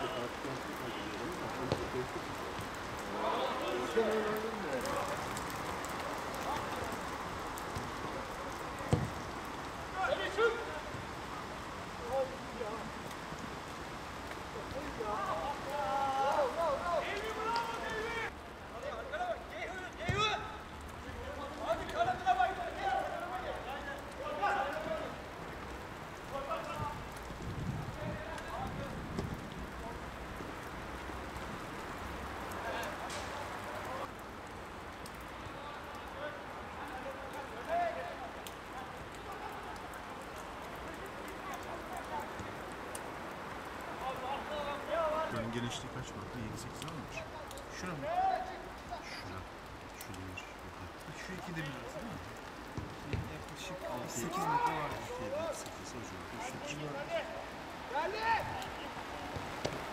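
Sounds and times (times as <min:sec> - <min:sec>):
players shouting: 0:00.0 - 0:07.2, 0:09.8 - 0:12.8, 0:14.6 - 0:18.4, 0:21.2 - 0:25.3, 0:51.8 - 0:59.9
steady background hiss: 0:00.0 - 0:59.9.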